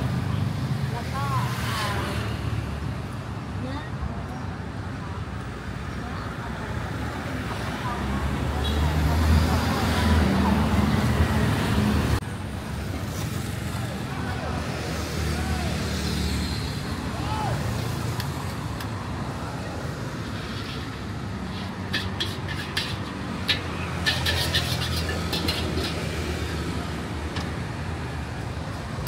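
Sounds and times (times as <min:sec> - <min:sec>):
street traffic: 0:00.0 - 0:29.0.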